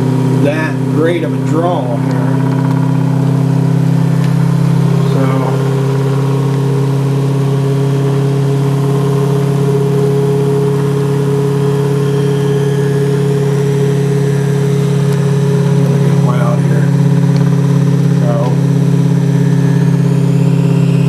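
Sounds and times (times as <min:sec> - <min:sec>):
motor humming: 0:00.0 - 0:21.0.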